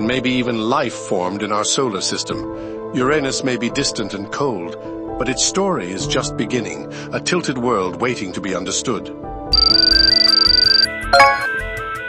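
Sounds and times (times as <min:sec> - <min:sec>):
background music: 0:00.0 - 0:12.0
high electronic trilling tone: 0:09.6 - 0:11.6.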